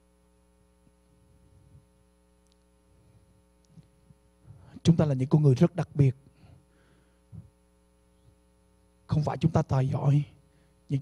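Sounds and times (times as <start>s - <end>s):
faint electrical mains hum: 0.0s - 11.0s
man speaking over microphone: 4.7s - 6.2s, 9.1s - 11.0s.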